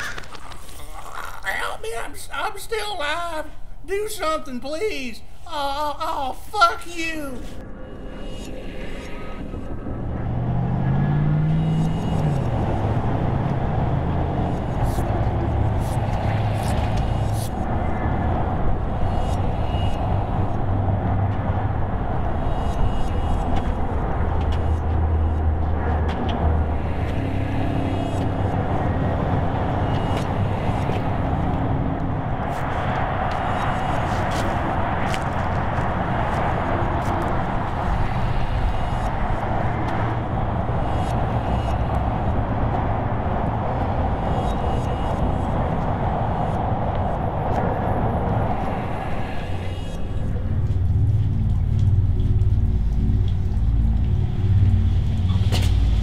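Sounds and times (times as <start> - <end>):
road traffic drone: 7.4 - 56.0.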